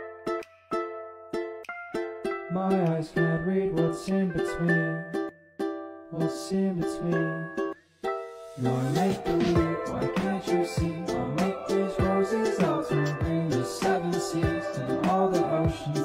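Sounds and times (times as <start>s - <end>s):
ukulele picking: 0.0s - 16.0s
bass line: 8.6s - 16.0s.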